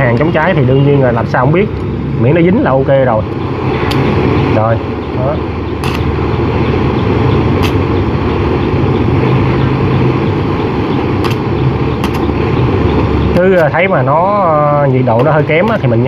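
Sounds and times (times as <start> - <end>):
low steady hum: 0.0 - 16.0
blowtorch flame: 3.0 - 5.0, 5.6 - 13.7
sharp clicks: 5.7 - 6.2, 7.0 - 8.7, 11.2 - 13.8, 15.2 - 15.9.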